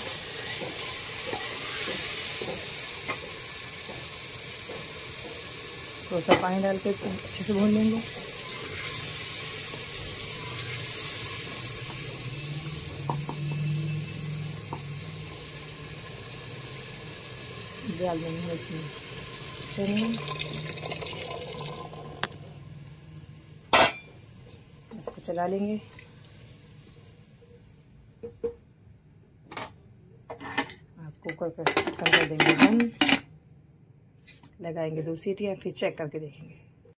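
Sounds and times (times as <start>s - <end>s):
masala sizzling: 0.0s - 28.2s
metal pot and lid clinking: 23.7s - 24.1s.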